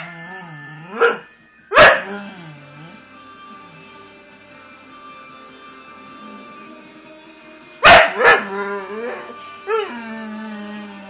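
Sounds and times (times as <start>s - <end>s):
dog whining: 0.0s - 3.0s, 8.2s - 11.0s
music: 0.0s - 11.0s
dog yipping: 0.8s - 2.1s
dog barking: 0.9s - 2.2s, 7.8s - 8.8s.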